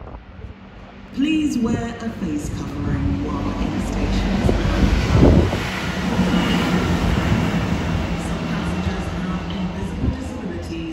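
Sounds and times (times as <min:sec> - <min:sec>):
diesel engine hum: 0:00.0 - 0:10.9
train wheels on rails: 0:02.6 - 0:10.9.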